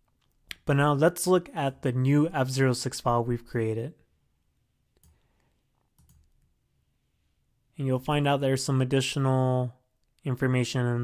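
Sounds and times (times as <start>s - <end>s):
computer mouse clicks: 5.0s - 6.5s.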